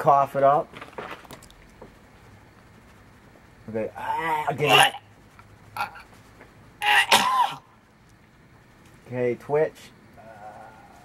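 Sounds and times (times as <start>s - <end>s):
man coughing harshly: 6.8s - 7.7s.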